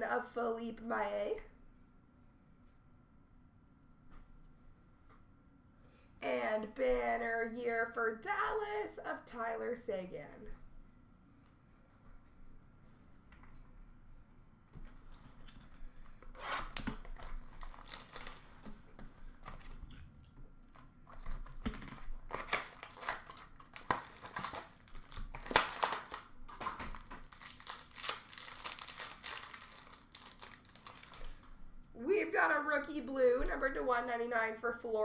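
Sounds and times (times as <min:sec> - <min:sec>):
card pack wrappers tearing and crinkling: 0:16.3 - 0:18.7, 0:20.7 - 0:31.5.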